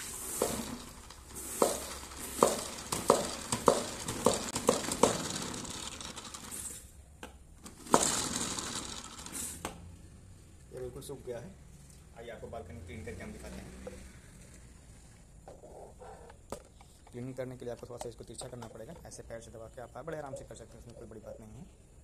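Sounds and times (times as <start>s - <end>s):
high hiss of water: 0.0s - 2.4s
spin mop clicking: 0.0s - 6.8s, 7.6s - 9.8s.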